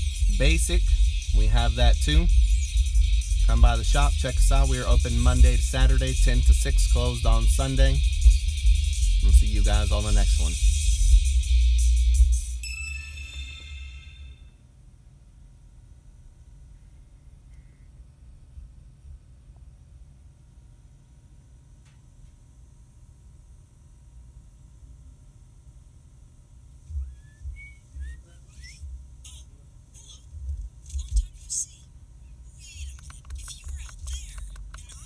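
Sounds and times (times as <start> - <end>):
rising whistle-like chirps: 0.0 - 4.9, 27.0 - 28.9
low rumble in truck cab: 0.0 - 12.6, 26.8 - 29.3.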